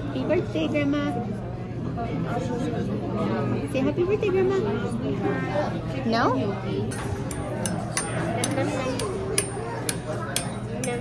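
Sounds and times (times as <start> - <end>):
restaurant chatter: 0.0 - 11.0.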